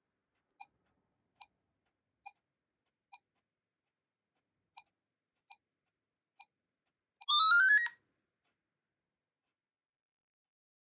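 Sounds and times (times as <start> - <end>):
electronic beeps climbing in pitch: 7.2 - 8.0.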